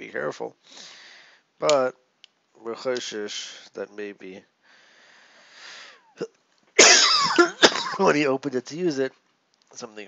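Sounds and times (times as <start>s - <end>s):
man coughing loudly: 6.2s - 8.1s.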